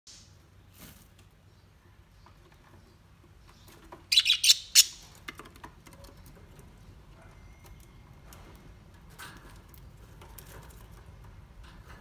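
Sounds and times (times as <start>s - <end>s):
budgerigars chirping: 4.1s - 5.0s.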